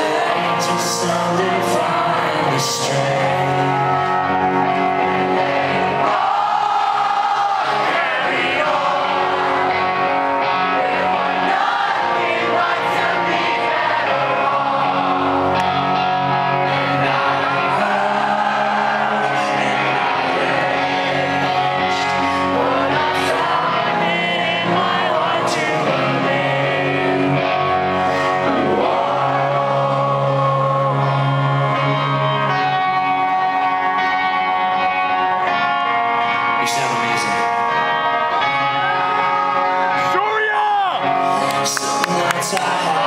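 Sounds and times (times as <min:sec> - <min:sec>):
audience singing along: 0:00.0 - 0:40.1, 0:41.1 - 0:43.0
pop-punk band playing live: 0:00.0 - 0:43.0.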